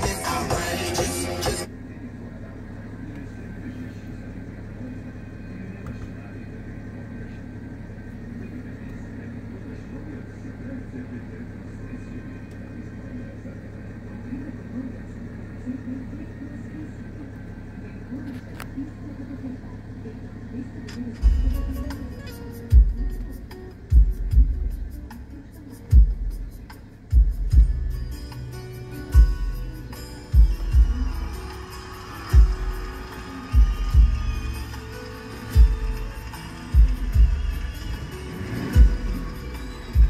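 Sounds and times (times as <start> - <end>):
car cabin low hum: 0.0 - 40.0
music with vocals through car speakers: 0.0 - 40.0.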